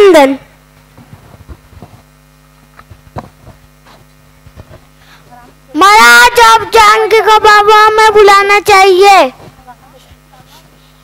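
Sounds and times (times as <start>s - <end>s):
electrical mains hum: 0.0s - 11.0s
microphone handling clicks: 0.9s - 2.1s, 2.7s - 4.9s.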